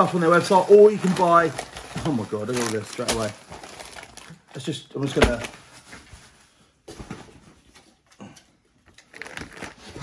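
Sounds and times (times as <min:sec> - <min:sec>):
plastic packets rustling: 0:00.0 - 0:06.6, 0:08.8 - 0:10.0.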